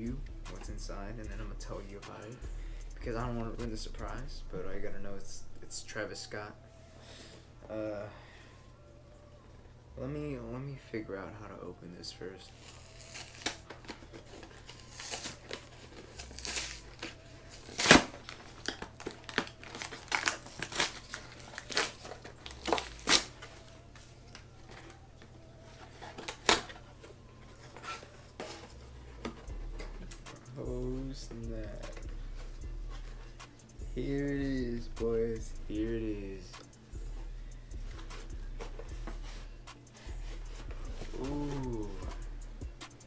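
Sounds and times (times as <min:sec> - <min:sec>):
packing material crinkling: 0:12.4 - 0:29.4
tape and cardboard ripping: 0:12.6 - 0:23.6, 0:25.7 - 0:26.8, 0:40.2 - 0:42.0.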